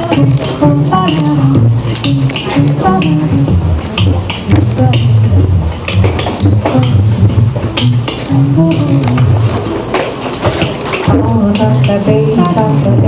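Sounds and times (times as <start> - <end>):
beatboxed percussion clicks: 0.0 - 13.0
sung looped bass line: 0.0 - 13.0.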